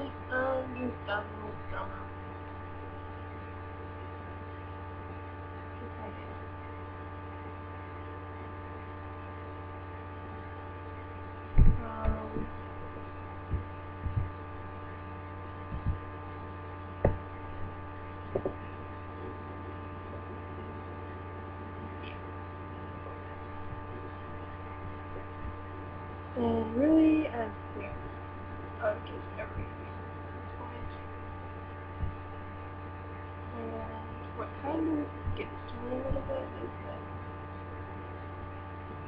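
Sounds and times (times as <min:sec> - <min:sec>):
steady electrical hum: 0:00.0 - 0:39.0
dull low knocks: 0:13.4 - 0:14.4, 0:15.7 - 0:16.1, 0:17.0 - 0:18.7.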